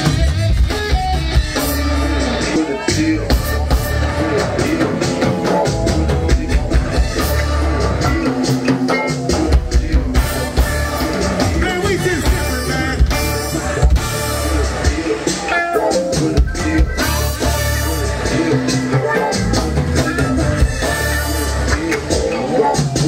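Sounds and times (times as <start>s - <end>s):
bass guitar: 0.0s - 23.0s
conga drums: 0.0s - 23.0s
drum kit: 0.0s - 23.0s
electric guitar: 0.0s - 23.0s.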